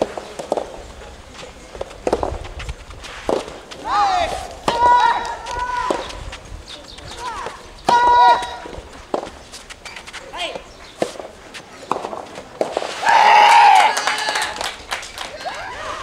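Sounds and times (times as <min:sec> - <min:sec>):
rackets hitting tennis ball: 0:00.0 - 0:13.2
person shouting: 0:03.8 - 0:06.0, 0:07.2 - 0:08.7.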